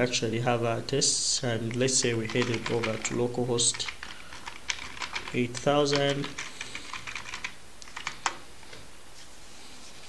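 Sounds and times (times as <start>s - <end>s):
computer keyboard typing: 1.7s - 8.4s.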